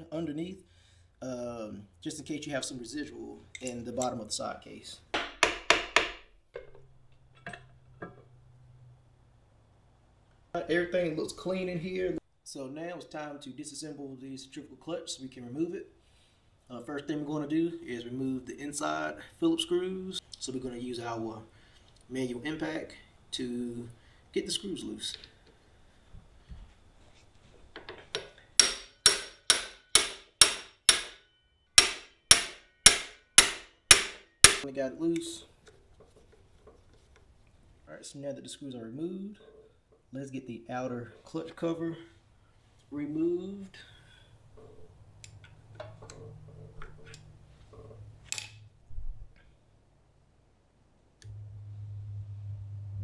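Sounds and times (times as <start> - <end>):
hammer tapping on metal: 5.2 - 6.7, 28.1 - 31.2, 31.8 - 34.6.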